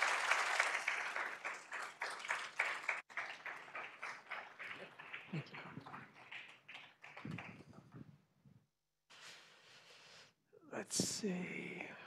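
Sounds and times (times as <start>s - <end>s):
applause: 0.0s - 8.1s.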